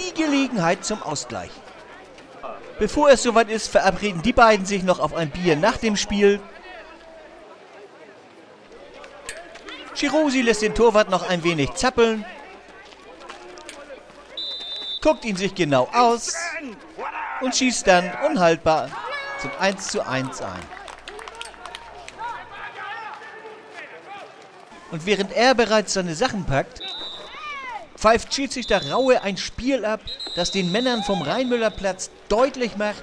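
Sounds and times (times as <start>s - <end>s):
distant crowd shouting: 0.0s - 15.6s, 16.4s - 25.3s, 26.7s - 33.0s
distant voices calling: 26.8s - 33.0s.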